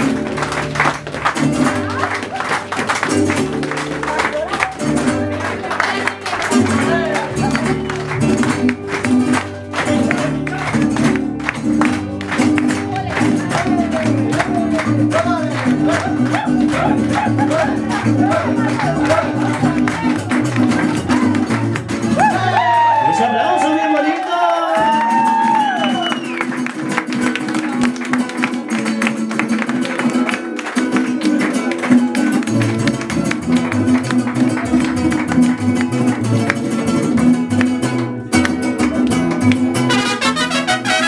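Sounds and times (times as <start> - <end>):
strummed guitars: 0.0 - 23.6, 24.6 - 41.0
hand-clapping: 0.0 - 41.0.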